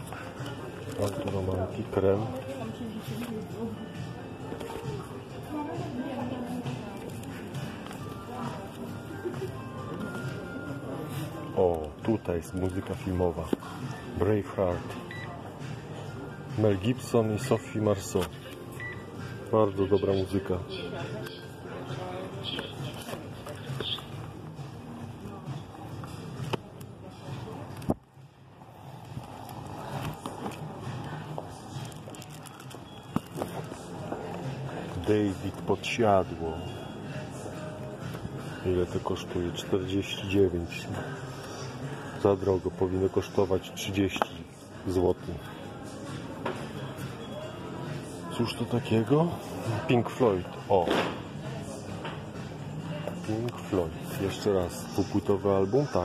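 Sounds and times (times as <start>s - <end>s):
background music in a shop: 0.0s - 56.0s.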